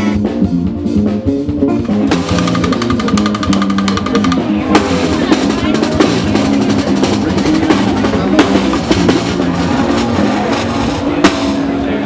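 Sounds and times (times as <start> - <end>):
crowd voices: 0.0 - 12.0
music: 0.0 - 12.0
snare drum crack: 2.0 - 9.3.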